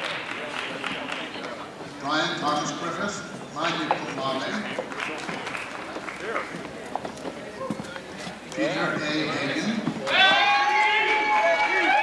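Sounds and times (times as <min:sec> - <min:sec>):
indistinct voices talking quietly: 0:00.0 - 0:11.2.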